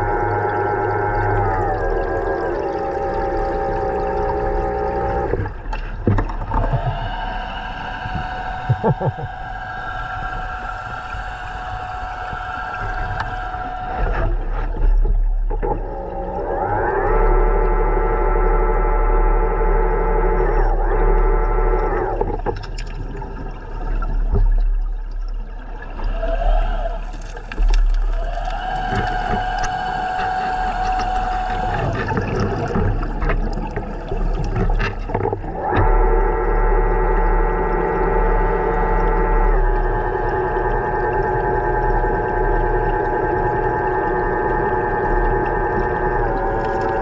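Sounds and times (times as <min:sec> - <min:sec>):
electric motor whining underwater: 0:00.0 - 0:24.6, 0:25.8 - 0:47.0
low underwater rumble: 0:00.0 - 0:47.0.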